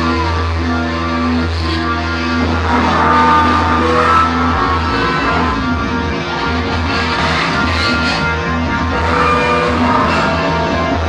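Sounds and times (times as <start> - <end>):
bass note: 0.0 - 11.0
electric guitar chords: 0.0 - 11.0.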